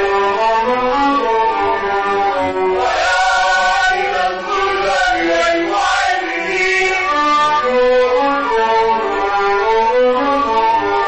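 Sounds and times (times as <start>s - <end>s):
instrumental accompaniment: 0.0s - 11.0s
vocal trio singing: 2.7s - 7.2s.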